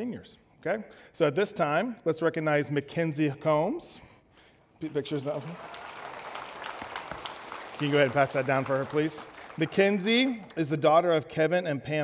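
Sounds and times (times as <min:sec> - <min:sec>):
scattered applause: 0:04.9 - 0:10.6.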